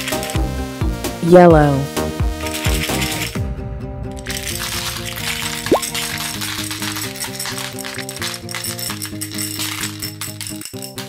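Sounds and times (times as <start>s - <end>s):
candies rattling onto a heap: 4.2s - 11.0s.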